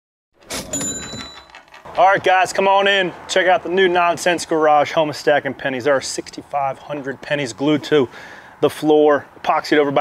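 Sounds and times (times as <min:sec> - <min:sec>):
cash register metallic clatter: 0:00.4 - 0:01.9
high ringing chime: 0:00.7 - 0:01.6.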